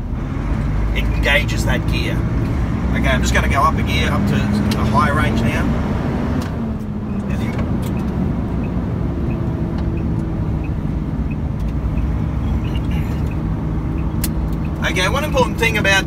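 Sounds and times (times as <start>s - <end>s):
diesel truck engine running: 0.0s - 16.0s.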